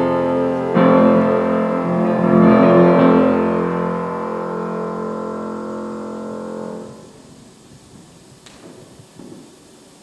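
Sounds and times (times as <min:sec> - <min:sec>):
grand piano chord ringing: 0:00.0 - 0:07.3.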